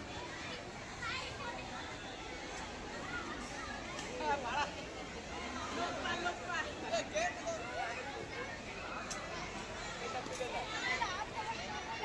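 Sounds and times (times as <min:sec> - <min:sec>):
young people shouting and chattering: 0:00.0 - 0:12.0.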